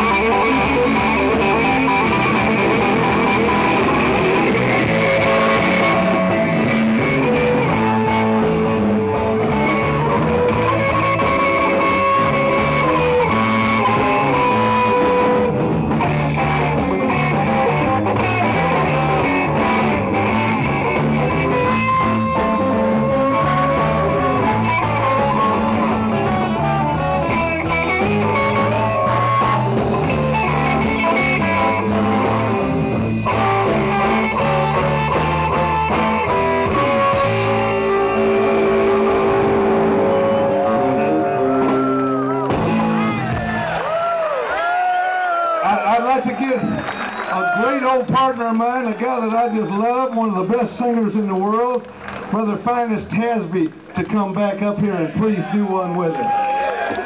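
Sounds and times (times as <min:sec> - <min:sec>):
electric guitar solo: 0:00.0 - 0:53.2
bass and drum kit: 0:00.0 - 0:55.6.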